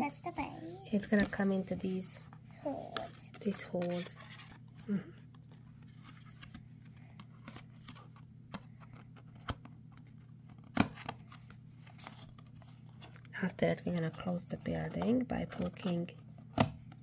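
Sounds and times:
paperboard scraping and crinkling: 0:00.6 - 0:04.8.

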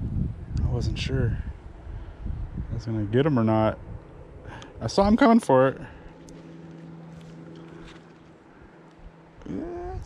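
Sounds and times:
man humming: 0:09.4 - 0:10.0.

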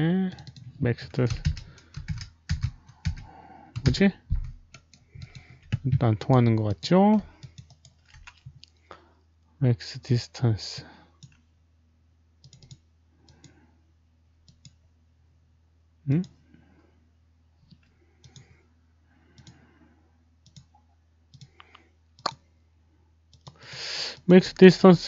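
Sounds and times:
computer mouse clicks: 0:12.4 - 0:13.6, 0:14.4 - 0:14.8, 0:17.7 - 0:18.5, 0:19.3 - 0:19.6, 0:20.4 - 0:20.7, 0:21.3 - 0:22.4, 0:23.3 - 0:23.6.

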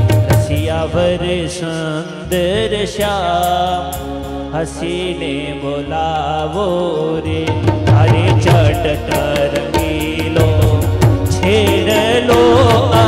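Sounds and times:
sharp percussion strikes: 0:07.5 - 0:13.0.

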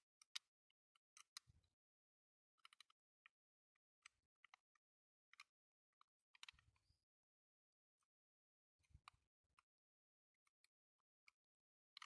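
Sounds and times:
small plastic parts clicking: 0:00.1 - 0:01.8, 0:02.6 - 0:03.4, 0:04.0 - 0:06.9, 0:10.4 - 0:12.0.

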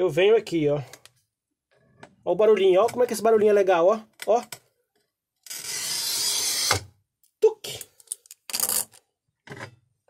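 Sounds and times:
glass cutter scoring glass: 0:05.4 - 0:06.9.

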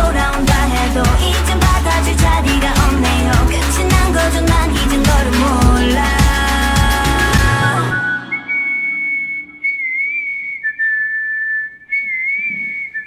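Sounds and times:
pop track: 0:00.0 - 0:10.8
high whistled melody: 0:06.1 - 0:13.0.

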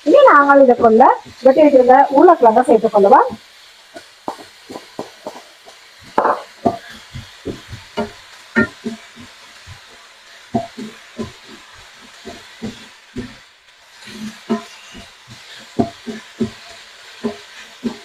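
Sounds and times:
wooden spatula scraping a frying pan: 0:03.9 - 0:18.0.

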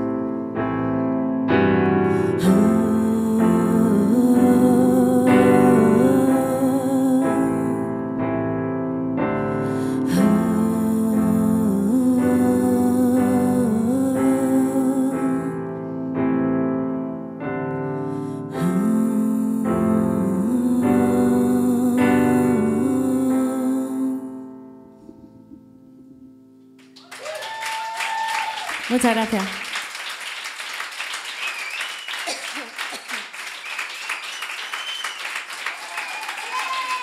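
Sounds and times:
electric piano chords: 0:00.0 - 0:27.0
woman singing long wordless notes: 0:02.1 - 0:08.2, 0:09.8 - 0:15.9, 0:18.4 - 0:24.6
audience applause: 0:26.9 - 0:37.0
long high cheer: 0:26.9 - 0:37.0.

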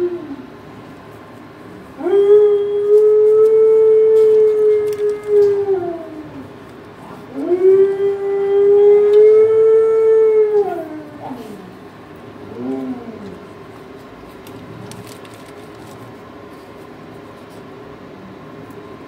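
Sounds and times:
dog howling: 0:00.0 - 0:00.5, 0:02.0 - 0:06.6, 0:07.3 - 0:11.8.

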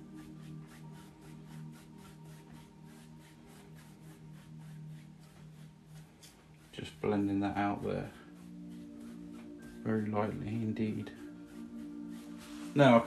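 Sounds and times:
brush scratching on canvas: 0:00.0 - 0:13.0
soft background music: 0:00.0 - 0:13.0.

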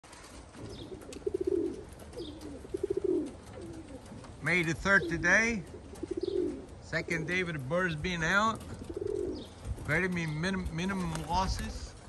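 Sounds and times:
pigeon cooing: 0:00.1 - 0:09.8.

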